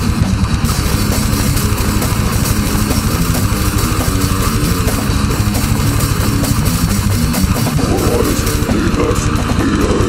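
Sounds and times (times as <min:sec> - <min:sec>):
distorted guitars and bass: 0:00.0 - 0:10.0
fast drumming: 0:00.0 - 0:10.0.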